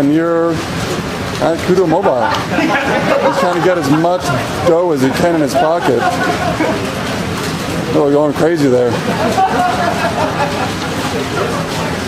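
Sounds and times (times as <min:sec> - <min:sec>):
blower fan rushing air: 0:00.0 - 0:12.0.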